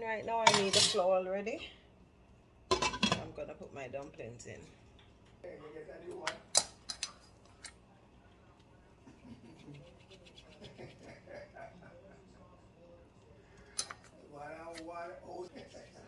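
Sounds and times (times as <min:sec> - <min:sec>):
kitchenware clicks and taps: 0:02.7 - 0:03.3.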